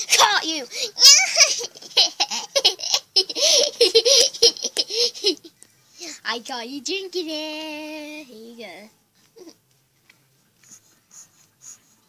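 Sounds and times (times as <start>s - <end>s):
girl laughing: 0.0s - 5.5s.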